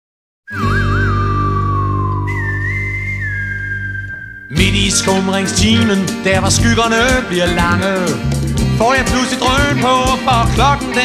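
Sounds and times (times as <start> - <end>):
whistled melody: 0.5 - 8.3.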